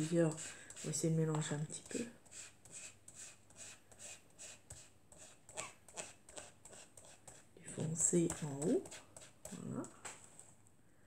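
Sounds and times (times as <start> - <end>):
foam tool brushing on card: 0.0 - 10.5.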